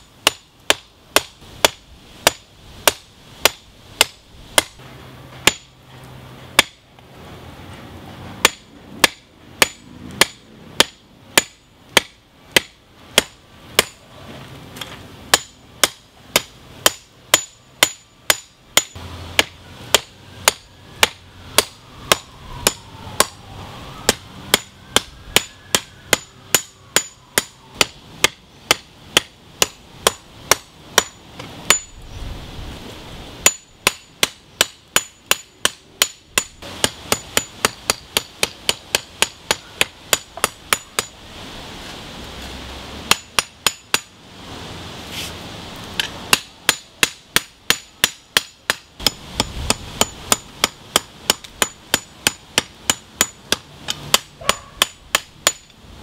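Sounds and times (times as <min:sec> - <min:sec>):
hammer striking metal on anvil: 0:15.3 - 0:23.3, 0:24.1 - 0:31.9, 0:43.1 - 0:44.1, 0:46.0 - 0:55.7.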